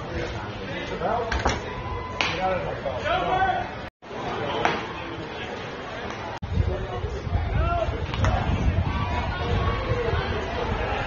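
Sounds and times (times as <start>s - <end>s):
people chattering: 0.0s - 11.0s.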